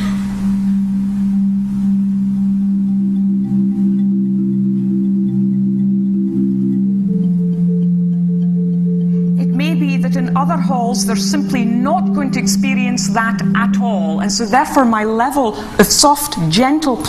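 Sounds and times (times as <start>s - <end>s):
soft pitched percussion chords: 0.0s - 15.3s.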